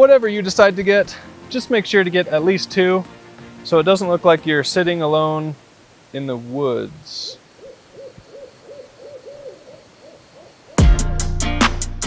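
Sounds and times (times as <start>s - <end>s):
short hooting calls: 7.0s - 11.0s
loud music with drum beat: 10.8s - 12.0s.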